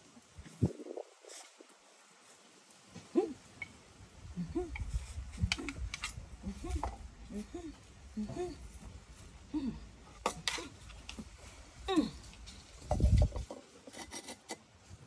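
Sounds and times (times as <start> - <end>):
woman humming low: 3.0 - 3.5, 4.2 - 10.8, 11.8 - 12.5.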